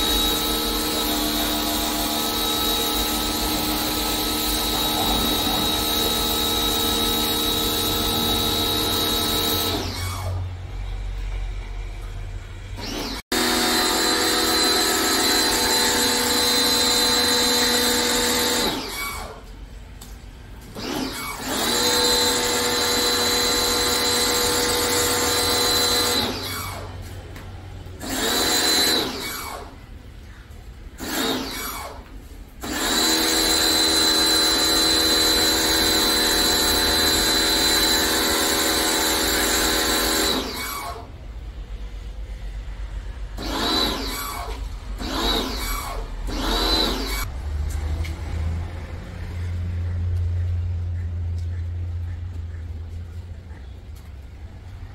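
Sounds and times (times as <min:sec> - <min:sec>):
pressure washer motor whining: 0:00.0 - 0:11.7, 0:12.6 - 0:19.6, 0:20.6 - 0:27.1, 0:28.0 - 0:29.8, 0:31.0 - 0:41.1, 0:43.4 - 0:47.3.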